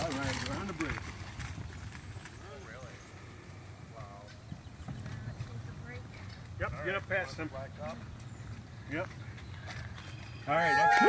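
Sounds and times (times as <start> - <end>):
walker wheels rolling on wooden boards: 0.0 - 11.0
footsteps on wooden boards: 0.9 - 10.5.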